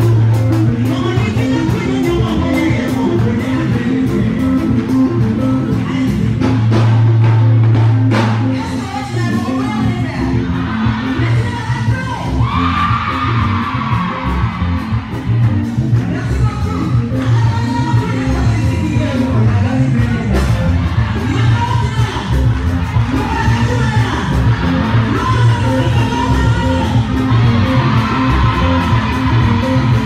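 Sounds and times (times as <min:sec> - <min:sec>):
heavy bass line: 0:00.0 - 0:30.0.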